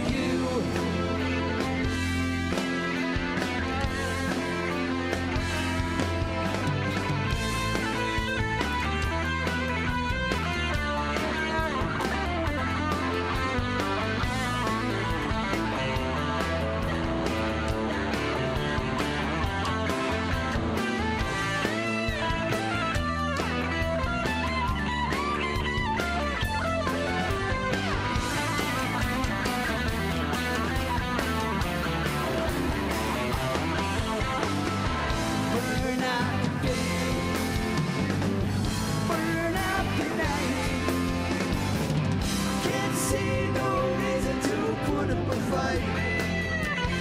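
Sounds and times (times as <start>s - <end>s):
bass guitar: 0.0s - 47.0s
drums and cymbals: 0.0s - 47.0s
electric guitar lead line: 0.0s - 47.0s.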